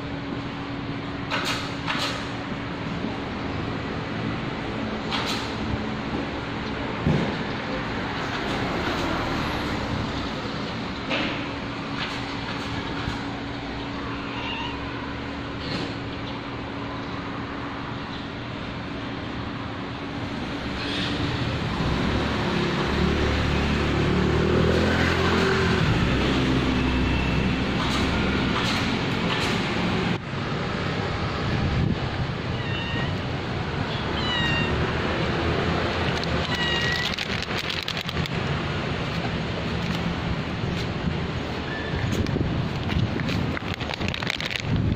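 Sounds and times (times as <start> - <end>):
street background noise: 0.0 - 44.9
cat meowing: 14.0 - 15.3, 32.5 - 33.2, 33.9 - 34.9, 36.4 - 37.2.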